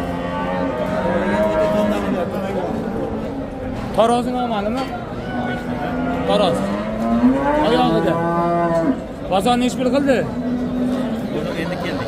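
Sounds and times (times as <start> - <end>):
cattle mooing: 0.0 - 2.2, 5.4 - 9.1
crowd chatter: 0.0 - 12.0.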